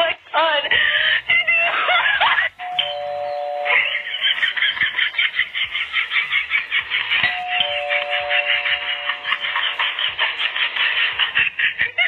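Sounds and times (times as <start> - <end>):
held tone with hiss: 1.0 - 11.2.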